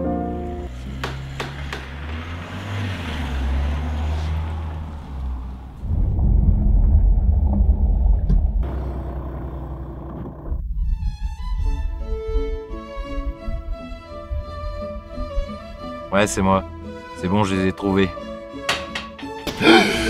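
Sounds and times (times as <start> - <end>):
background music with low drone: 0.0 - 0.8, 10.6 - 20.0
car engine and tyres rumbling: 0.0 - 16.1.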